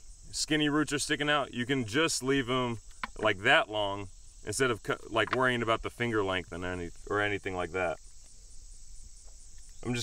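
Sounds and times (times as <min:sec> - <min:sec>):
insects chirring: 0:00.0 - 0:10.0
man's voice: 0:00.4 - 0:08.0.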